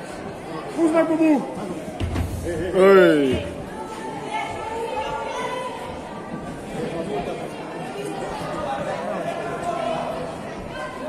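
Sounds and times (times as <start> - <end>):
voices chattering and calling out: 0.0 - 11.0.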